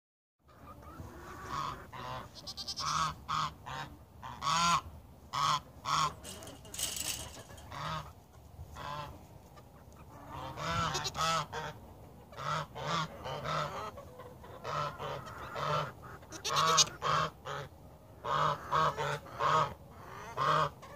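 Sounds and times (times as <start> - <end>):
goats bleating: 2.2 - 3.0, 10.9 - 11.2, 16.3 - 17.0.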